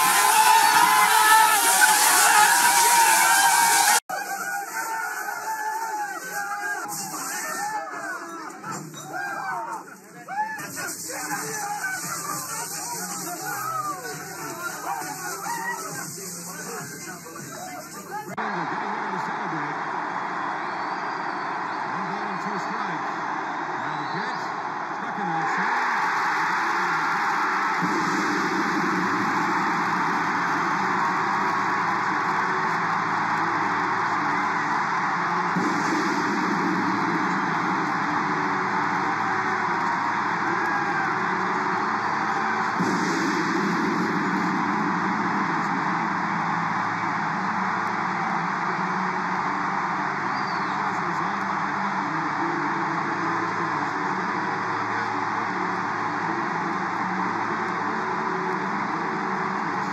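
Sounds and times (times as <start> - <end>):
stadium crowd cheering: 0.0 - 59.9.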